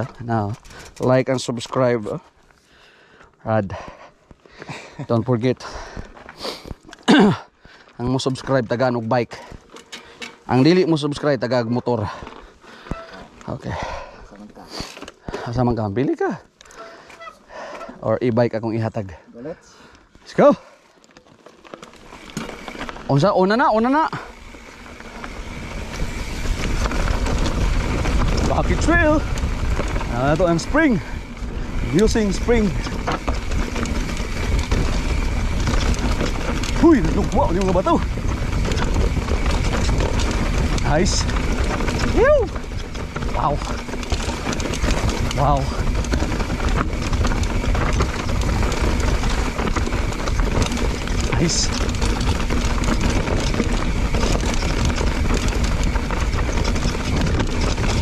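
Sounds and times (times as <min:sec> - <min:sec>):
bike clicks and rattles: 0:00.0 - 0:58.0
bike tyres rolling on gravel: 0:00.0 - 0:58.0.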